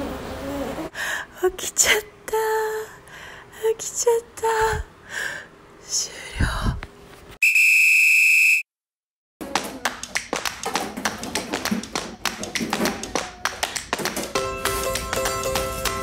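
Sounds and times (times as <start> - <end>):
rapid sharp clicks and knocks: 9.5 - 16.0.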